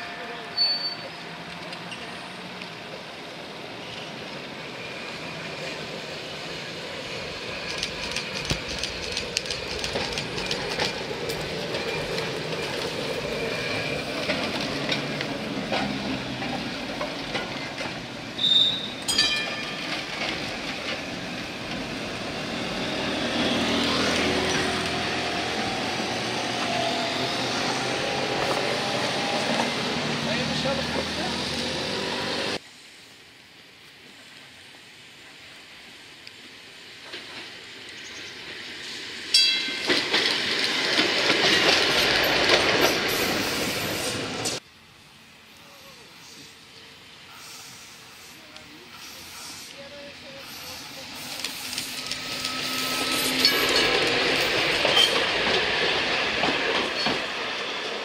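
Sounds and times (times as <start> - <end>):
electric tram rolling past: 0.0 - 32.6, 34.7 - 58.0
wheels clicking over rail joints: 7.6 - 22.0, 39.3 - 43.5, 51.2 - 58.0.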